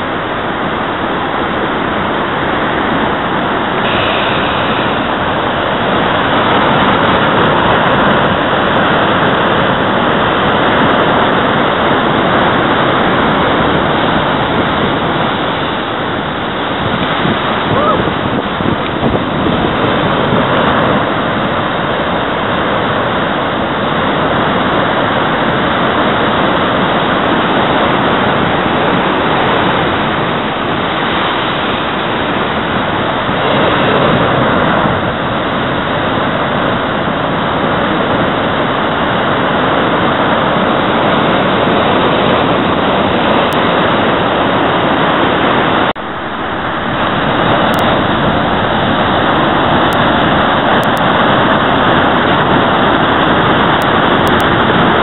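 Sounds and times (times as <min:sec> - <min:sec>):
surf breaking over rocks: 0:00.0 - 0:55.0.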